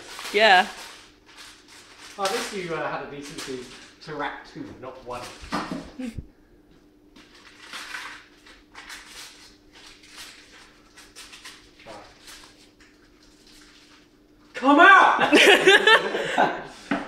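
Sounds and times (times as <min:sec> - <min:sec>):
newspaper crinkling and rustling: 0:00.0 - 0:02.7, 0:07.2 - 0:14.1.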